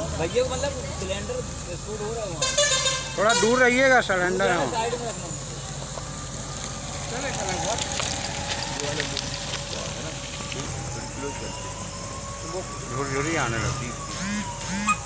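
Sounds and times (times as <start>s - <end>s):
building fire rushing and crackling: 3.5s - 14.1s.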